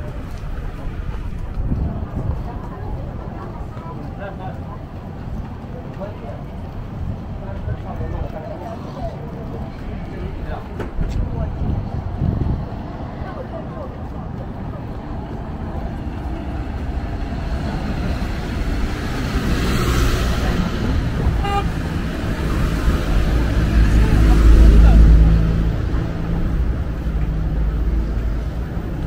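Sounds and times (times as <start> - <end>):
vehicle engine passing by: 15.4 - 29.0
short horn toot: 21.4 - 21.7.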